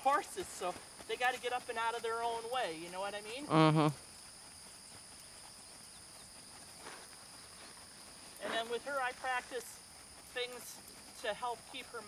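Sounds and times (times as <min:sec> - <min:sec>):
faint hoofbeats on dirt: 0:00.0 - 0:12.0
high-pitched insect chorus: 0:00.0 - 0:12.0.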